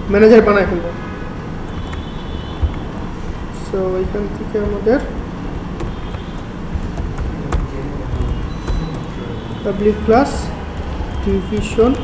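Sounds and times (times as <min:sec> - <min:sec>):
keyboard keys clicking: 0:02.6 - 0:03.0, 0:04.0 - 0:12.0.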